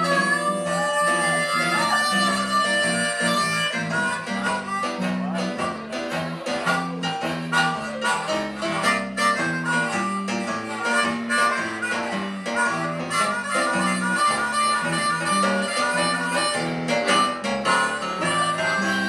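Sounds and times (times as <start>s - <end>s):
blues band playing: 0.0s - 19.0s
harmonica bending notes: 0.0s - 19.0s.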